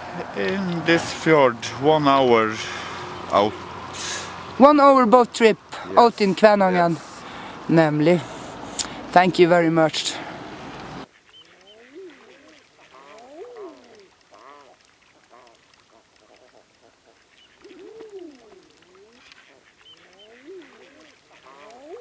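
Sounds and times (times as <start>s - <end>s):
ducks calling: 0.0s - 9.0s, 10.8s - 22.0s.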